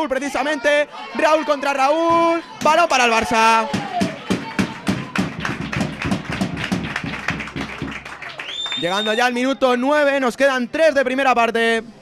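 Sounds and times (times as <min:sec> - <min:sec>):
hand clapping: 0:03.7 - 0:09.1.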